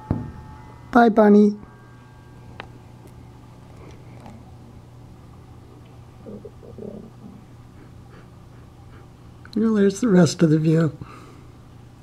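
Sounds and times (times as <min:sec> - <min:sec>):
steady low hum: 0:00.0 - 0:12.0
soft low murmurs: 0:05.7 - 0:07.9.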